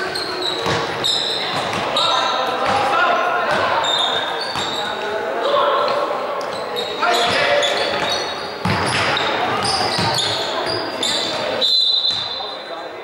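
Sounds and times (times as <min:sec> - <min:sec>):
sneakers squeaking on floor: 0:00.0 - 0:13.0
basketball bouncing: 0:00.6 - 0:01.9, 0:07.3 - 0:10.8.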